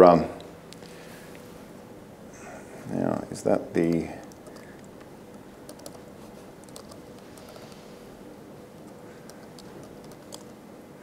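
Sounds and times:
low room noise: 0.0 - 11.0
typing on laptop keyboard: 5.7 - 6.0, 6.6 - 7.7, 8.8 - 10.5.

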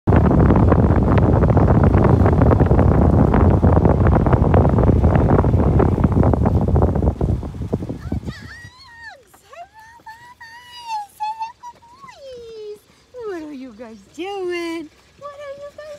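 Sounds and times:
wind buffeting microphone: 0.0 - 15.9.

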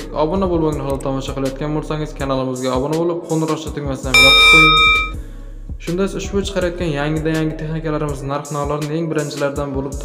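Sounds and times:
notification bell chime: 4.2 - 5.1.

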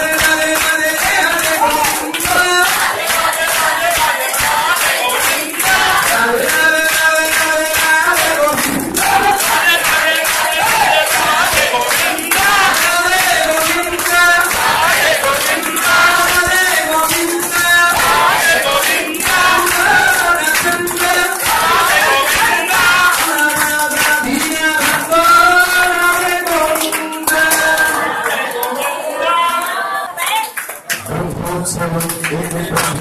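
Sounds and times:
crowd singing a devotional song: 0.0 - 30.3
rhythmic handclapping: 0.0 - 33.0.

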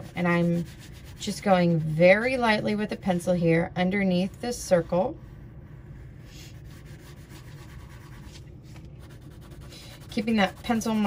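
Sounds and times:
pencil scratching on paper: 0.0 - 2.3, 4.1 - 11.0.

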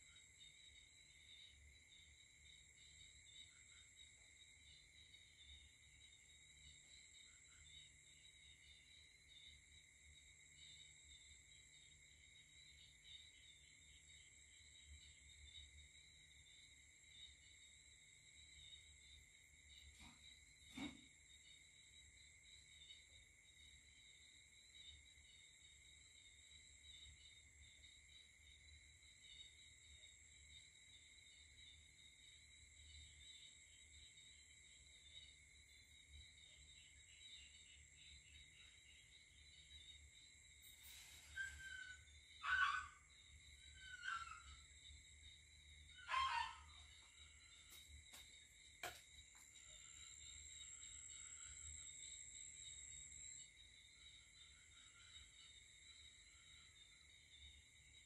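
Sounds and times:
crickets and insects chirping: 0.0 - 58.0.

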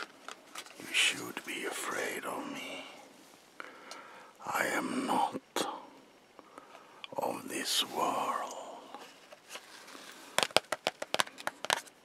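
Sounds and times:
woman whispering: 0.9 - 3.0, 7.3 - 8.9.

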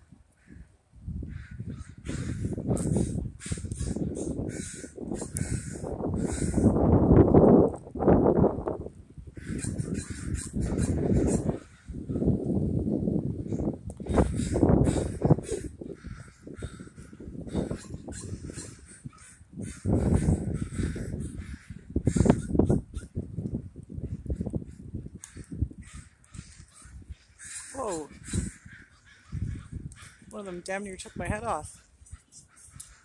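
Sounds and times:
crows cawing: 0.3 - 6.8, 9.4 - 12.4, 13.5 - 23.1, 24.1 - 33.0.

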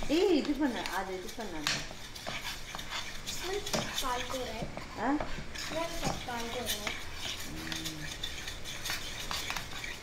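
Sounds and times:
metal spoon scraping steel pan: 0.1 - 4.6, 5.2 - 10.0.

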